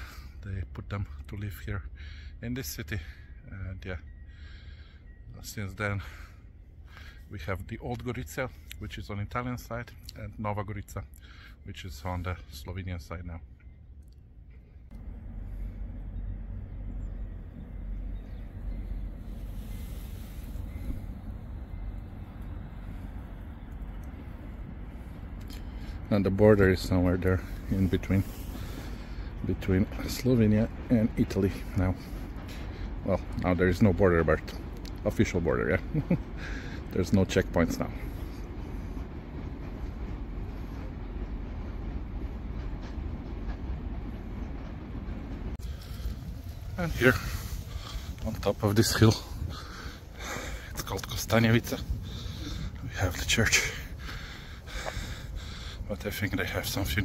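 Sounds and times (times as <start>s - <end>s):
wind buffeting microphone: 38.4s - 57.0s.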